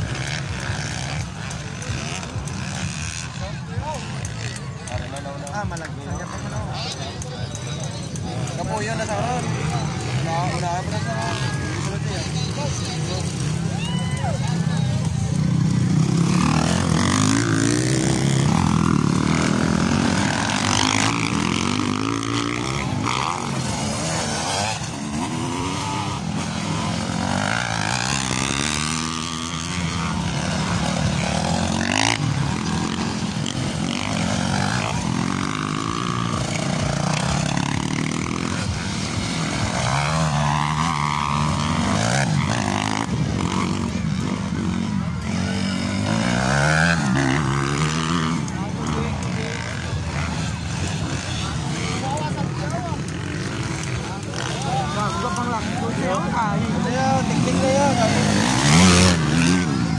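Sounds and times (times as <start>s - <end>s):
dirt bikes revving past: 0.0s - 59.9s
people's voices: 0.0s - 59.9s.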